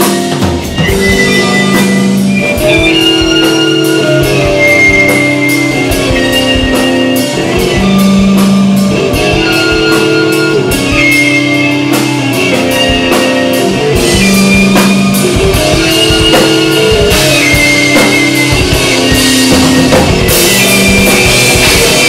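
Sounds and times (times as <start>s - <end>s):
drum kit beat: 0.0s - 22.0s
sustained guitar notes: 0.0s - 22.0s.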